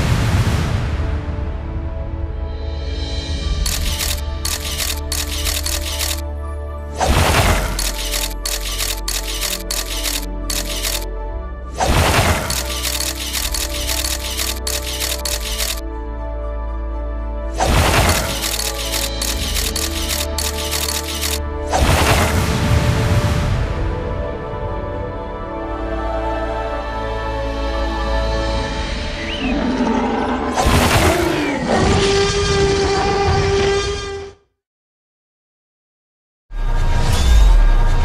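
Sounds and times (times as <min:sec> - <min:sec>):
background music with low notes: 0:00.3 - 0:29.8.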